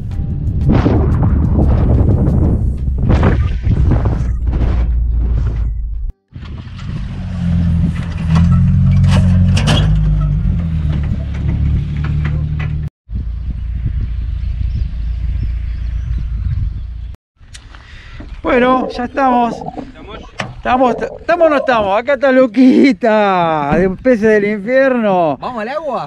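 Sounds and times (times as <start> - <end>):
car engine and road rumble: 2.3 - 17.2.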